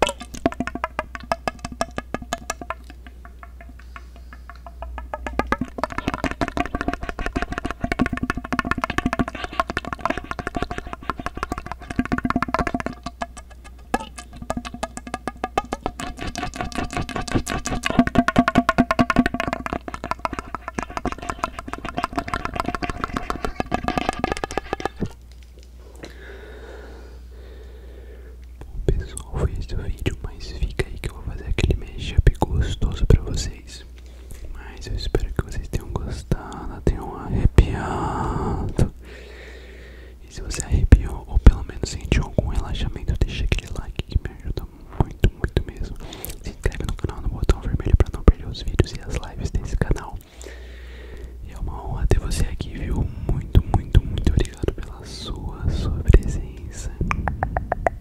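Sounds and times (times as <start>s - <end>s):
close whispering: 28.7s - 39.0s, 40.2s - 50.4s, 51.4s - 57.1s.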